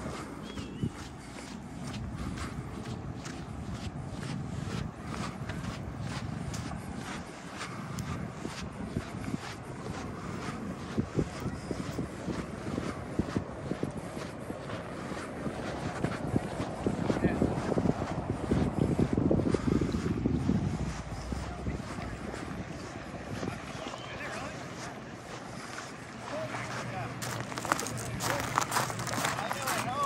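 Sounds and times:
calm water washing on shore: 0.0s - 18.7s, 19.6s - 30.0s
steady outdoor hiss: 0.0s - 30.0s
wind buffeting microphone: 0.0s - 30.0s
faint distant voices: 20.7s - 30.0s.

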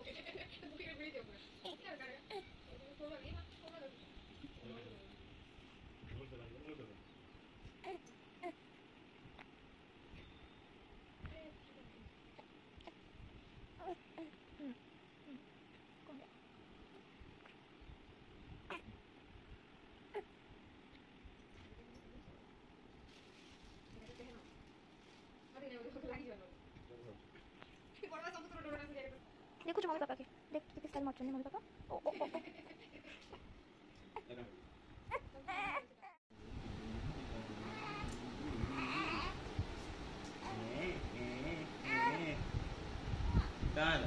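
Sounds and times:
low voices: 36.5s - 39.7s
baby crying: 37.6s - 39.4s, 41.8s - 42.3s.

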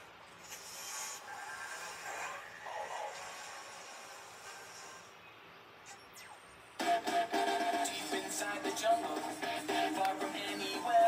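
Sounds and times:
faint cartoon music: 0.0s - 11.0s
cartoon theme song: 6.8s - 11.0s.

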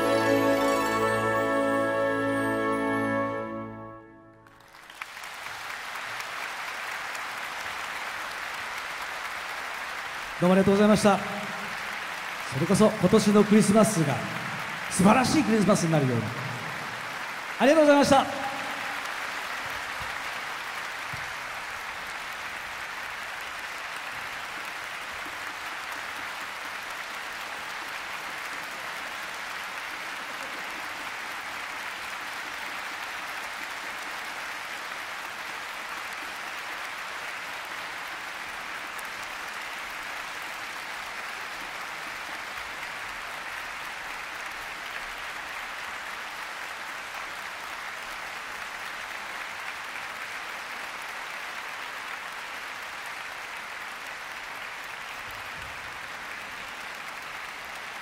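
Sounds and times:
audience applause: 0.0s - 3.8s, 4.4s - 58.0s.

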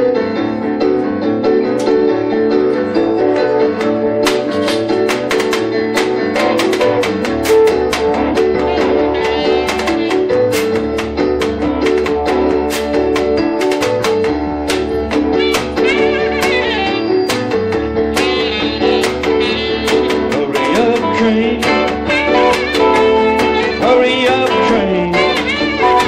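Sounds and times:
bass: 0.0s - 26.0s
blues band playing: 0.0s - 26.0s
guitar: 0.0s - 26.0s
steady percussive beat: 3.3s - 26.0s
saxophone melody: 6.4s - 11.5s, 14.8s - 26.0s.

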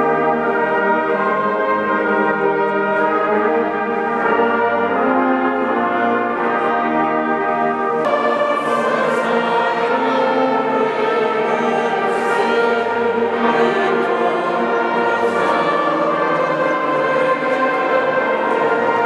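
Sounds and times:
pipe organ playing chords: 0.0s - 19.0s
voices singing: 8.0s - 19.0s.

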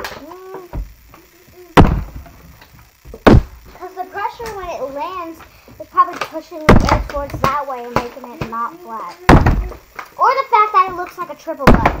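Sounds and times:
plastic water bottle landing thuds: 1.8s - 2.4s, 6.7s - 8.1s, 9.3s - 9.8s.

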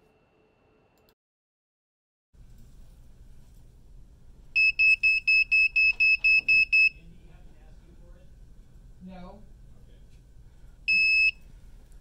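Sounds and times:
thermometer alarm high beeps: 4.6s - 7.0s, 10.9s - 11.4s.

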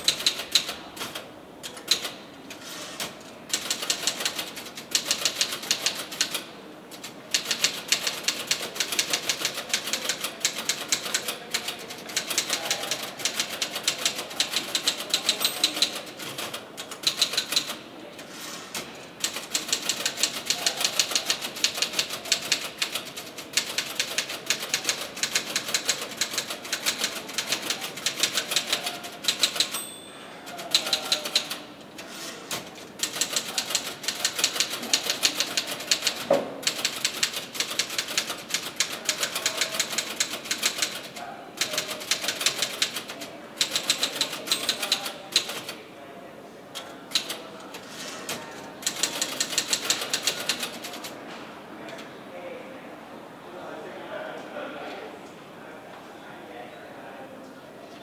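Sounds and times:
fast typing on a keyboard: 0.0s - 1.2s, 3.5s - 6.4s, 7.0s - 17.8s, 19.2s - 29.8s, 30.6s - 31.6s, 32.9s - 45.8s, 47.1s - 47.7s, 48.8s - 51.2s.

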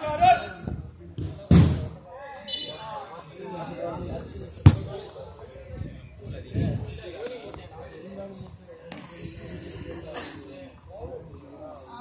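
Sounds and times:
football kick thud: 1.2s - 2.0s, 4.6s - 5.0s
players calling: 2.3s - 3.7s.

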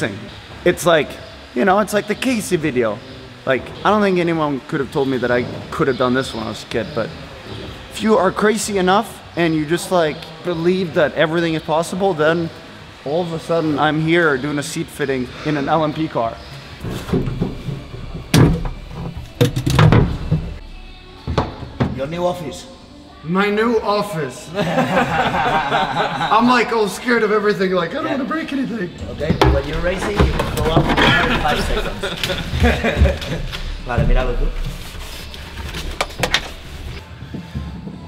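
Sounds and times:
knocks and thuds of parts handled: 16.8s - 20.6s, 21.2s - 22.0s, 29.2s - 36.7s.

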